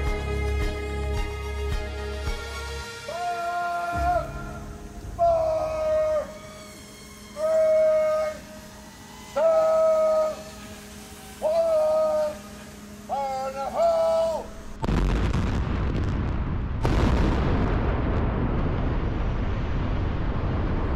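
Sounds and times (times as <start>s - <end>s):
warning horn blasts: 2.2s - 14.9s.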